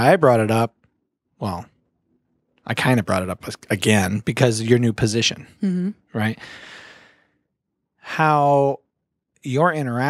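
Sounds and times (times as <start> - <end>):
man speaking: 0.0 - 0.7, 1.4 - 1.7, 2.7 - 5.5, 6.2 - 6.9, 8.0 - 8.8, 9.4 - 10.0
man sighing: 6.2 - 7.1.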